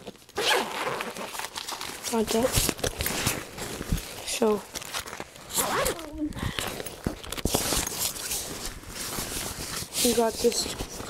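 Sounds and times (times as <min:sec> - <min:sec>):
zipper pulled open: 0:00.3 - 0:04.1, 0:05.5 - 0:08.5
fabric rustling: 0:00.4 - 0:11.0.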